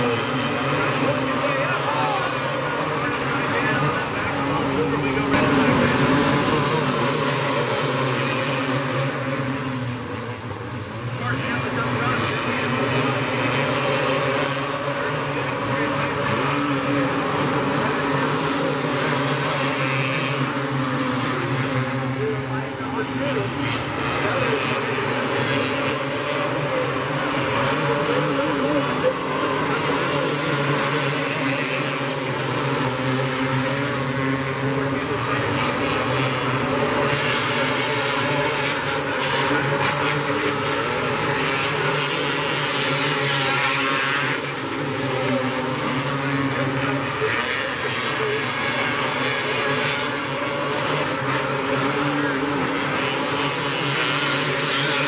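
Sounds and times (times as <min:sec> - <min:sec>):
kart engines droning: 0:00.0 - 0:55.0.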